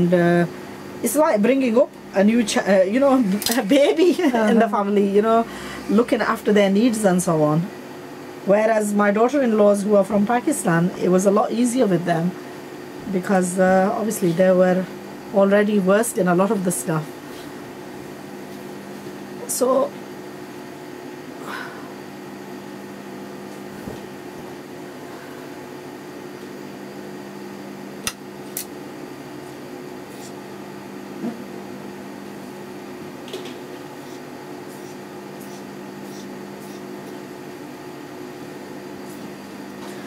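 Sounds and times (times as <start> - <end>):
low electric hum: 0.0 - 40.0.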